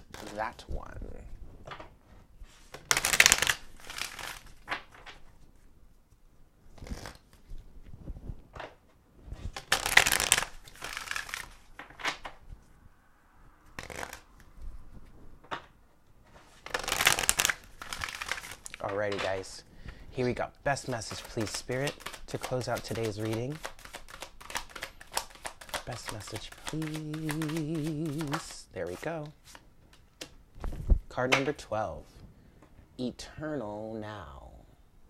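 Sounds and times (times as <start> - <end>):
cards being shuffled: 0.0 - 0.7, 2.5 - 7.6, 9.4 - 12.6, 13.7 - 15.2, 16.3 - 19.5, 20.7 - 31.0.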